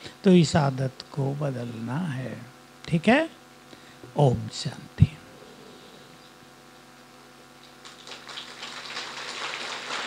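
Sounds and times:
audience applause: 7.8s - 10.0s.

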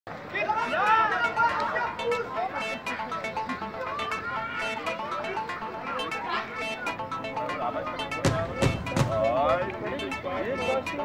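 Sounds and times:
people talking and calling out: 0.1s - 11.0s.

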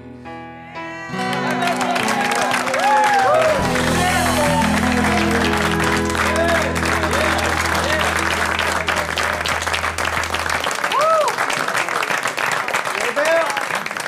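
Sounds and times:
studio audience applauding: 1.1s - 14.0s
band's chord ringing: 1.3s - 11.7s.

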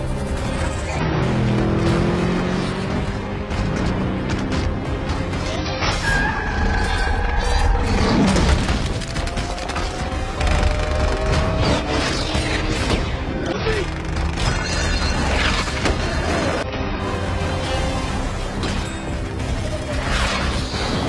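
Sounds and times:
action film score: 0.0s - 21.0s.

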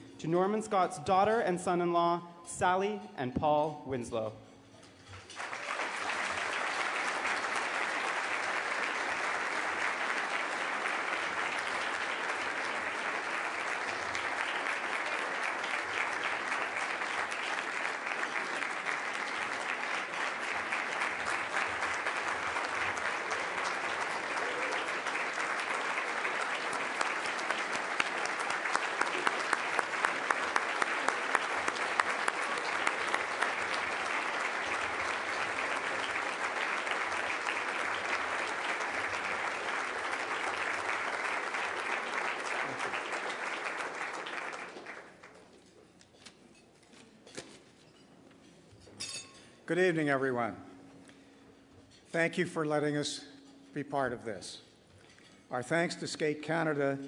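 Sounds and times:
audience applauding: 5.2s - 45.5s
close person clapping: 5.2s - 45.7s.

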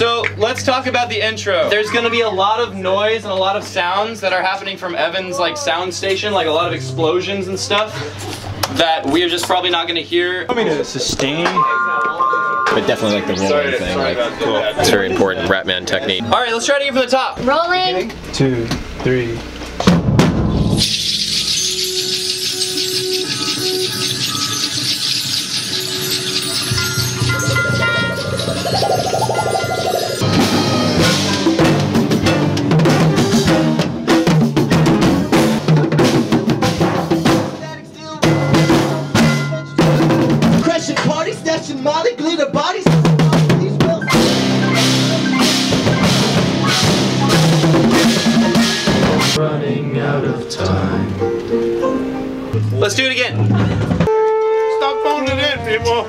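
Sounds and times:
live band playing: 20.8s - 37.6s, 44.0s - 49.4s.

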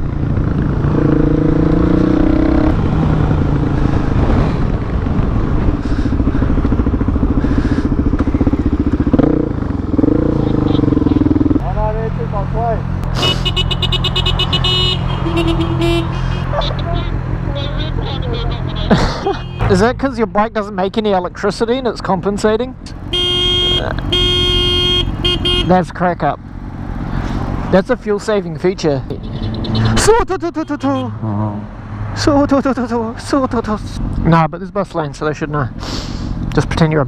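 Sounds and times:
motorcycle engine revving: 0.0s - 20.1s, 22.8s - 27.8s
horn honking in buzzing bursts: 13.2s - 19.8s, 23.0s - 25.8s, 29.4s - 31.2s.

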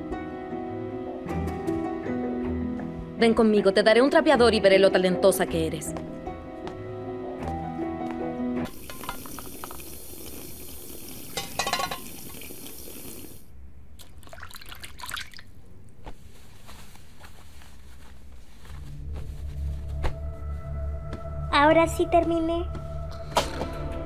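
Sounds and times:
soft background music: 0.0s - 8.8s, 18.4s - 24.0s
tap running into a sink: 8.7s - 9.8s
glasses and dishes clinking: 8.8s - 9.5s, 11.3s - 12.2s.

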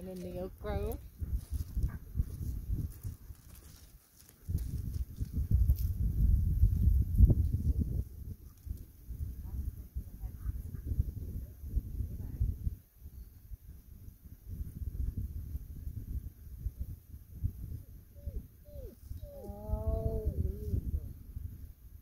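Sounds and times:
low uneven rumble: 18.1s - 21.8s.

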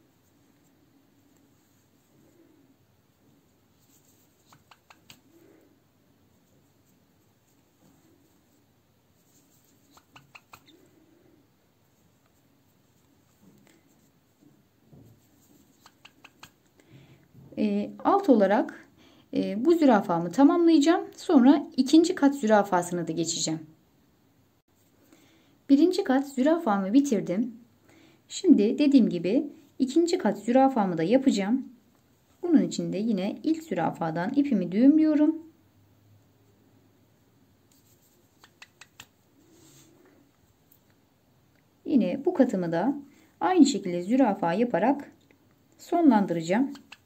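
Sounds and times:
needle and thread rubbing fabric: 0.0s - 5.7s, 6.3s - 11.3s, 37.6s - 40.6s
soft rustle: 0.0s - 17.6s, 24.6s - 25.4s, 34.6s - 44.2s
faint clicks: 4.5s - 5.3s, 38.3s - 39.2s.

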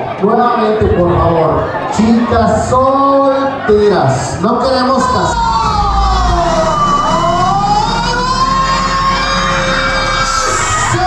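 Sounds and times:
background music: 1.7s - 11.0s
siren-like wailing tones: 4.8s - 11.0s.

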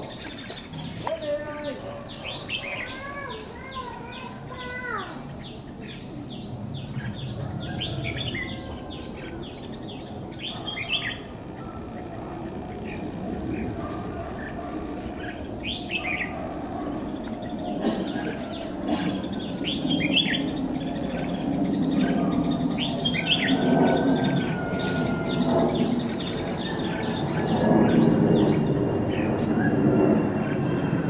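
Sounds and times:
birds chirping: 0.0s - 31.0s.

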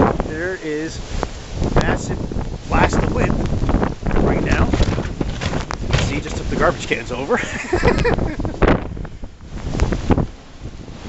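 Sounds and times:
wind gusts buffeting microphone: 0.0s - 11.0s.

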